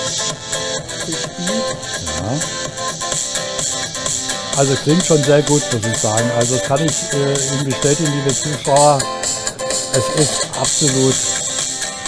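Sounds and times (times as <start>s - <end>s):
music with percussive beat: 0.0s - 12.0s.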